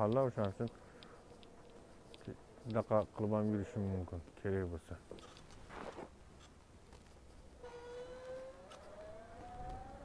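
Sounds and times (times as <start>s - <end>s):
faint siren wailing: 7.6s - 10.0s.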